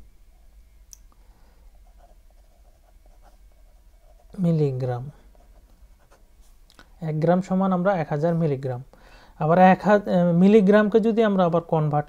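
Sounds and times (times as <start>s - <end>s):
pen scratching on paper: 1.8s - 4.5s.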